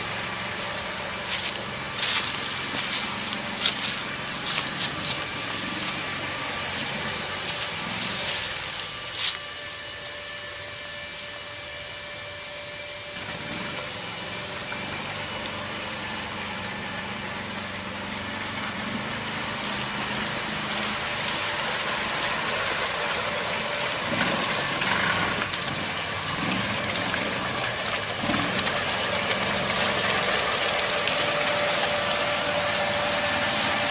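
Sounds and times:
vehicle pushing through water: 0:00.0 - 0:09.5, 0:13.2 - 0:33.9
tracked vehicle engine running: 0:00.0 - 0:33.9.

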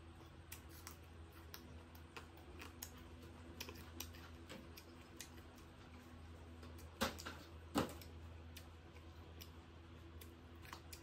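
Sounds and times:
low steady hum: 0:00.0 - 0:11.0
soft eating clicks and smacks: 0:00.0 - 0:11.0.

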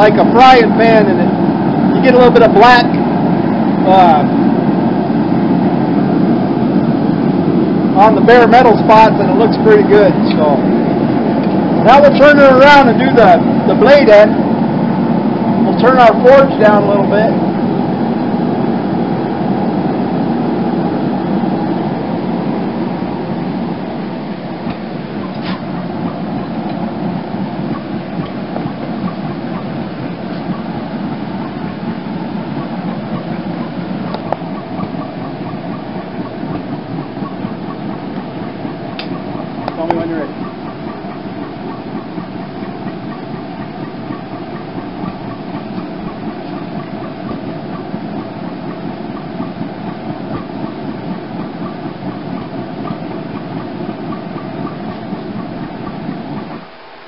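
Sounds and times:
gas forge burner roaring: 0:00.0 - 0:57.0.

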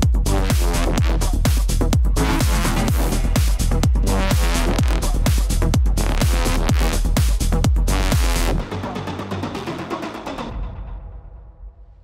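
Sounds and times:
electronic music with drum beat: 0:00.0 - 0:11.1.

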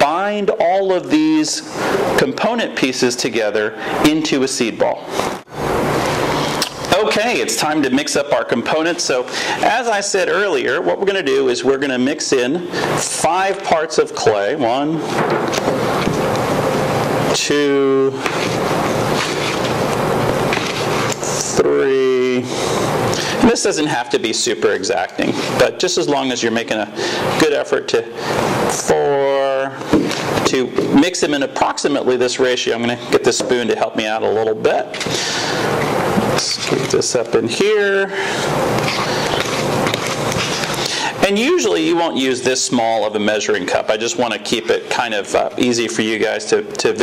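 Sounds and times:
steady background hiss: 0:00.0 - 0:47.0
plastic cup scraping clay: 0:38.8 - 0:40.9.

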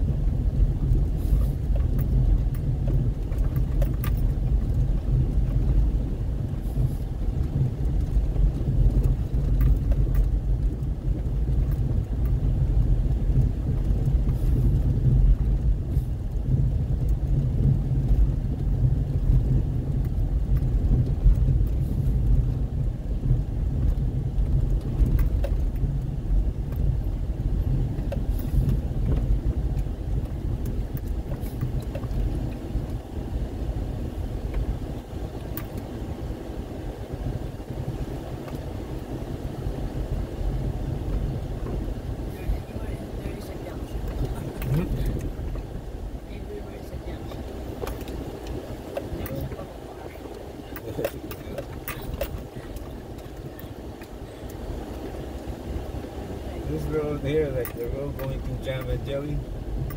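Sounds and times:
car driving on dirt road: 0:00.0 - 0:59.9.

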